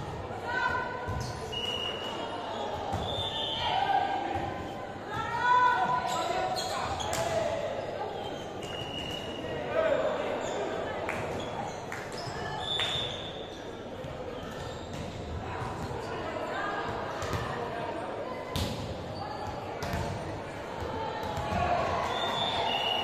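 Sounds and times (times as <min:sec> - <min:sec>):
players' echoing voices: 0:00.0 - 0:23.0.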